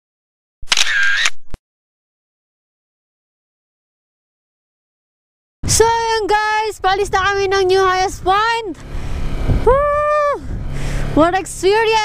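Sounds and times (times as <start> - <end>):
camera shutter click: 0.6 - 1.6.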